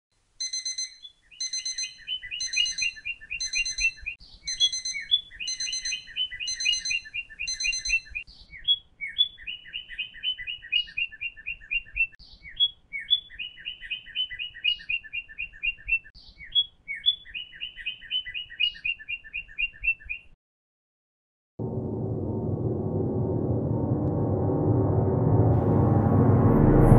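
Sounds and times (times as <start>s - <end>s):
phone alarm bird chirps: 0.4s - 10.9s.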